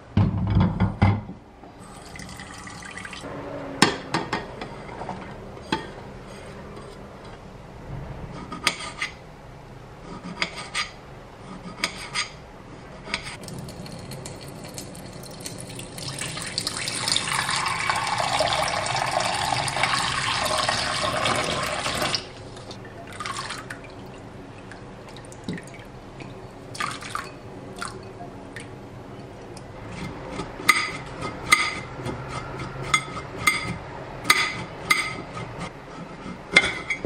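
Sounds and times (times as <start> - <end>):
knife scraping ceramic plate: 4.3 - 7.4, 8.3 - 9.2, 10.0 - 13.4, 29.9 - 37.0
light splashes and drips: 13.4 - 19.0, 22.1 - 29.6
tap water running into saucepan: 13.4 - 24.0.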